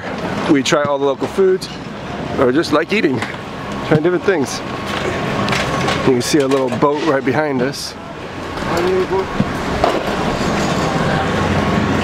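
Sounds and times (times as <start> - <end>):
boat engine humming: 0.0 - 12.0
crowd chatter: 0.0 - 12.0.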